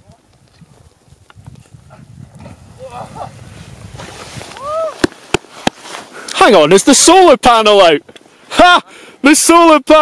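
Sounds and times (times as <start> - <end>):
wind rumbling on microphone: 0.0 - 5.4
whooping cheer: 4.5 - 5.0.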